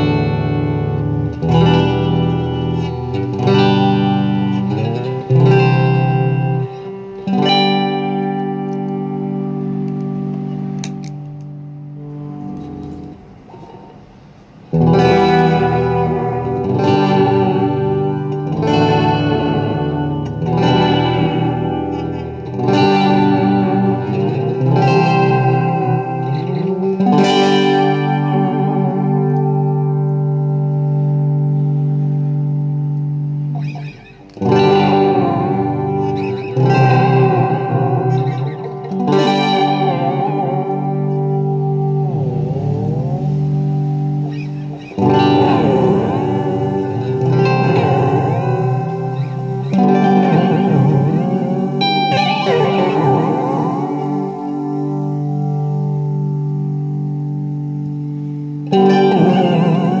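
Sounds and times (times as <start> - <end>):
fuzzy electric guitar chords: 0.0 - 60.0.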